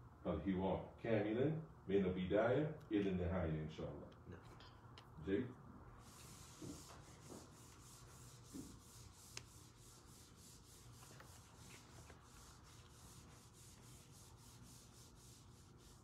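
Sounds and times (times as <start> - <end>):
eraser wiping whiteboard: 6.0 - 16.0.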